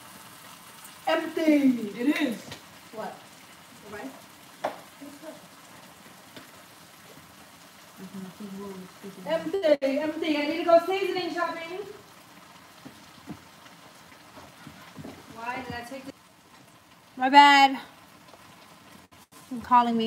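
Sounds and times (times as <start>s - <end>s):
food sizzling in a pan: 0.0s - 20.0s.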